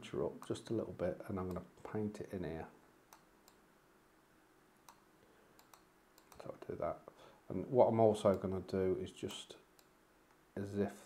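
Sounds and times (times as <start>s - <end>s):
computer mouse clicks: 3.1s - 3.6s, 4.8s - 6.5s.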